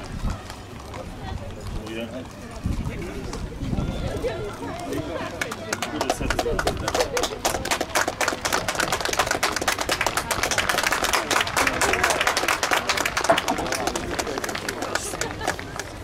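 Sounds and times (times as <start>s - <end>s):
crowd applauding: 5.1s - 16.0s.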